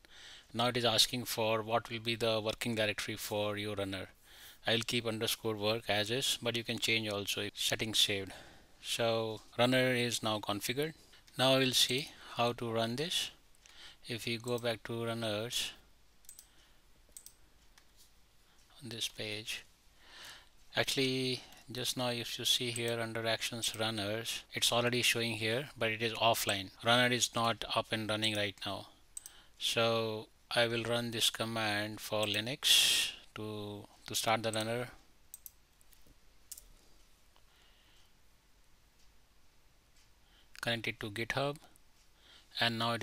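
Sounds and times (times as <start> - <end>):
computer key clicks: 16.2 - 16.5, 17.1 - 17.9, 35.3 - 36.7
faint computer mouse clicks: 16.2 - 18.1, 29.2 - 29.4, 35.3 - 38.1.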